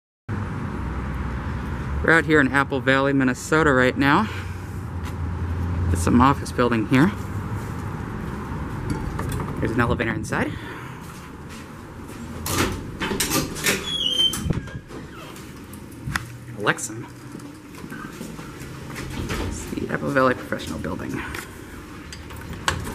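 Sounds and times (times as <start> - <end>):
road traffic: 0.3 - 22.9
doors swinging open and shut: 11.3 - 22.9
high door squeak: 12.6 - 15.6.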